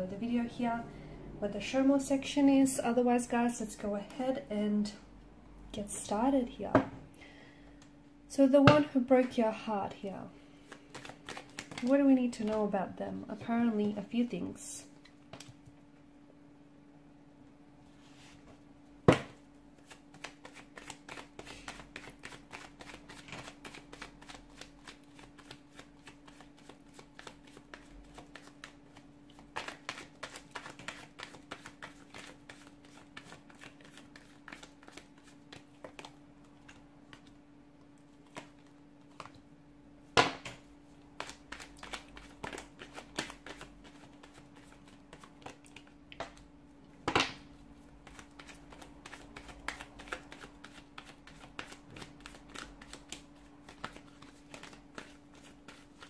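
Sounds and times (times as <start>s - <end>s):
low hum: 0.0s - 2.9s
cards being shuffled: 10.6s - 12.6s, 19.8s - 37.4s, 38.1s - 39.4s, 40.4s - 46.4s, 48.0s - 56.0s.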